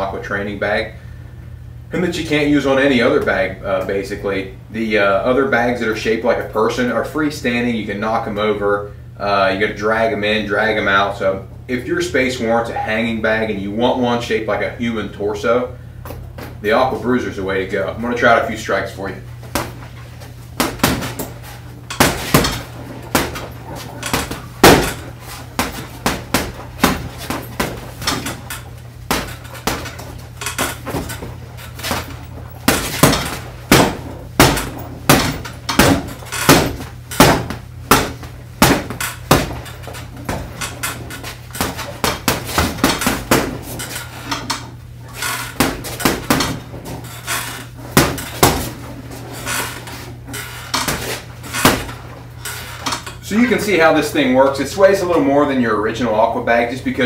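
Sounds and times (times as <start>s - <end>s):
punches on heavy bag: 20.6s - 44.0s, 45.5s - 47.2s, 47.9s - 48.9s, 50.7s - 52.2s.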